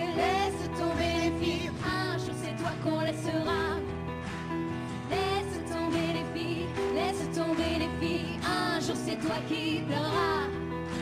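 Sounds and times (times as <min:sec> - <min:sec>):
women singing pop song: 0:00.0 - 0:04.0, 0:05.1 - 0:10.7.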